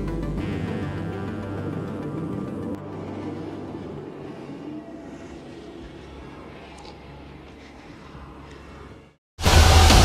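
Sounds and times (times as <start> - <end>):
low rumbling drone: 0.0 - 9.0.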